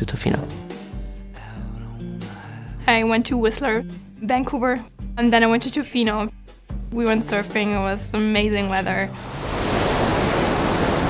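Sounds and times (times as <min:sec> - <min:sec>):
ocean waves breaking: 0:09.1 - 0:11.0.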